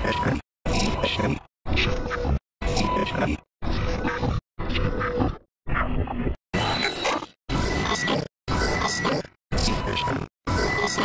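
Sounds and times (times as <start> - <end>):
stuttering processed grunt: 0.0 - 2.0, 2.6 - 4.4, 6.6 - 11.0.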